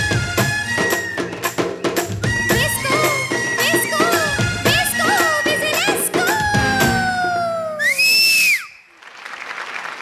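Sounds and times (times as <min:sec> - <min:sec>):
audience applauding: 0:07.8 - 0:10.0.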